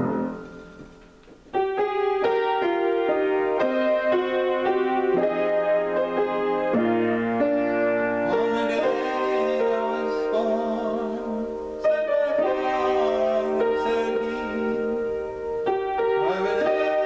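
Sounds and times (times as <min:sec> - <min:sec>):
solo grand piano: 0:00.0 - 0:17.0.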